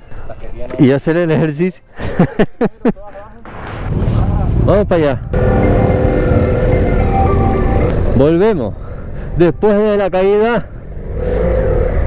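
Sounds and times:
laughter: 2.0 - 3.0.

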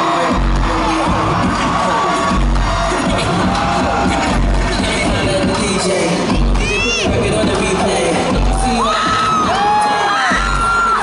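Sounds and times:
fans screaming and whooping: 0.0 - 11.0
loud dance music: 0.0 - 11.0.

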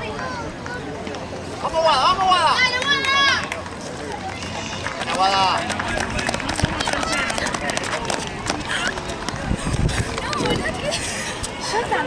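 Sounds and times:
crowd shouting and cheering: 1.6 - 12.0
sprinters' footfalls on track: 3.4 - 10.9.

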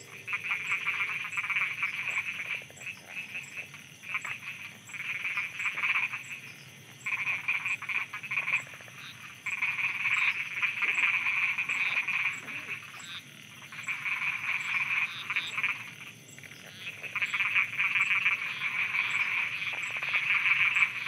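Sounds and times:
frogs croaking: 0.0 - 21.0.

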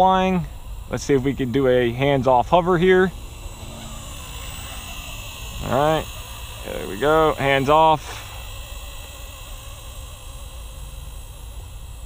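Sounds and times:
rc helicopter whine: 0.0 - 12.0.

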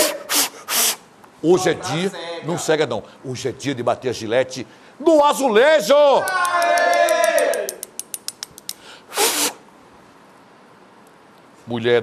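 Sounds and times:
short hissing burst: 0.0 - 1.1, 8.8 - 9.7
sharp clicks: 7.3 - 8.8.

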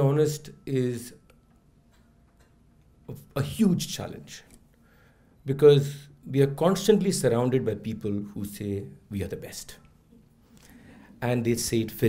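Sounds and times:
man speaking into a microphone: 3.1 - 4.5, 5.5 - 9.8, 11.2 - 12.0.

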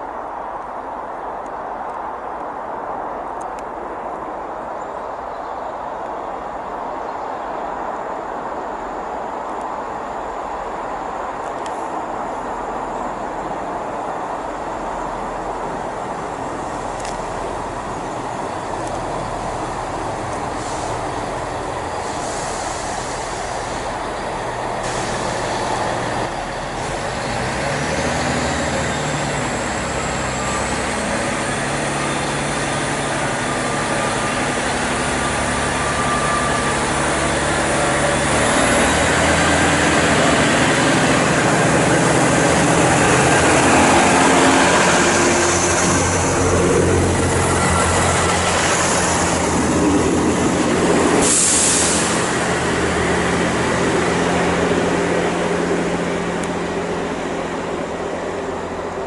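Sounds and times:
train engines running: 5.8 - 59.0
train passing: 5.8 - 59.0
hiss of air: 20.4 - 21.3, 21.9 - 24.0, 24.8 - 25.9, 50.8 - 52.5.

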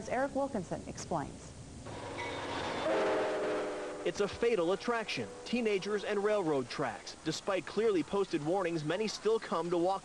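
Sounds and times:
train air horn chord: 1.9 - 6.7
train rushing by: 1.9 - 9.4.

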